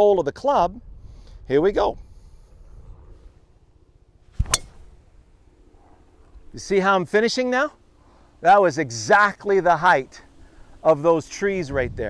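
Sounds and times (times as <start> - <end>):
golf ball impact crack: 4.3 - 5.1.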